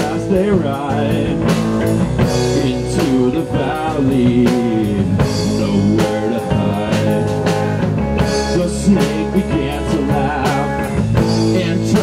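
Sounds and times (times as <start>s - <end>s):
drum and cymbal hits: 0.0s - 12.0s
electric guitar: 0.0s - 12.0s.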